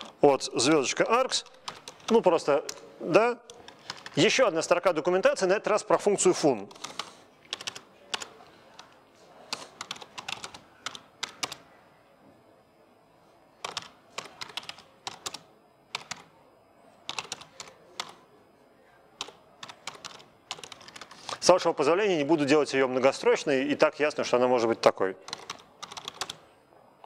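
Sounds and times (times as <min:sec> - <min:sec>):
computer keyboard typing: 0:01.0 - 0:02.8, 0:03.5 - 0:04.3, 0:06.7 - 0:11.6, 0:13.6 - 0:16.3, 0:17.0 - 0:18.2, 0:19.2 - 0:21.4, 0:25.3 - 0:26.4.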